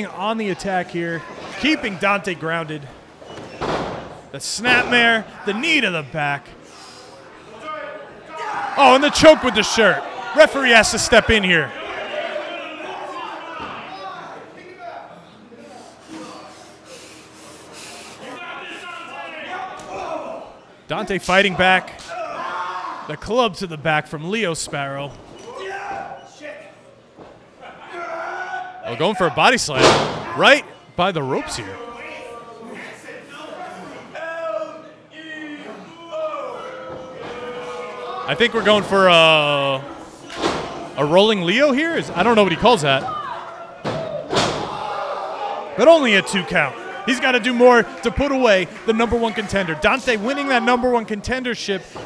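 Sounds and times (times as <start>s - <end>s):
commentator's voice: 8.8s - 11.7s, 38.3s - 39.8s, 41.0s - 43.0s, 45.8s - 51.9s.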